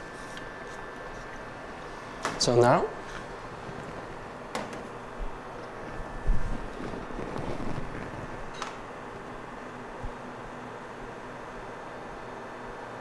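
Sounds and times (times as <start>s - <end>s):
steady background hum: 0.0s - 13.0s.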